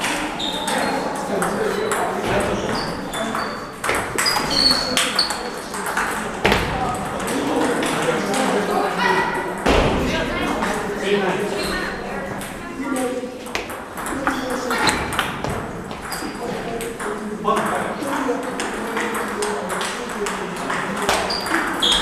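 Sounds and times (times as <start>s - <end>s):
table tennis balls clicking: 0.0s - 8.6s, 12.3s - 17.8s, 18.4s - 22.0s
people chattering: 0.0s - 22.0s.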